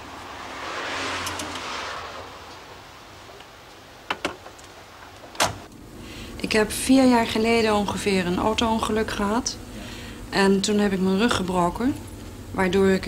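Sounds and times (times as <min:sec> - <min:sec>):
car driving past: 0:00.0 - 0:04.1.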